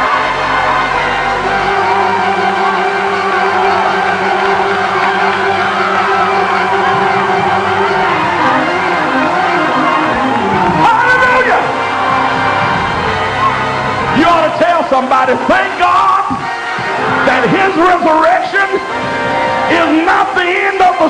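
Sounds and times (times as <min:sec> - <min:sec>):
church organ chords: 0:00.0 - 0:21.0
congregation shouting and cheering: 0:00.0 - 0:21.0.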